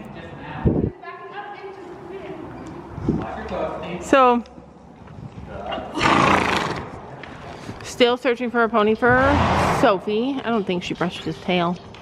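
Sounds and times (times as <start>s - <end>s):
horse snorting: 5.9s - 6.9s.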